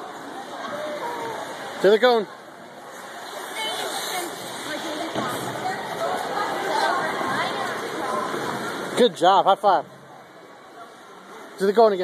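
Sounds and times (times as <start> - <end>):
distant chatter of voices: 0.0 - 12.0.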